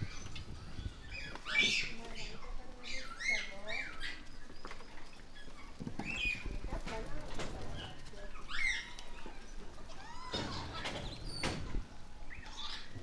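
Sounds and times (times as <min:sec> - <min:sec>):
monkeys squeaking and cooing: 0:00.0 - 0:13.0.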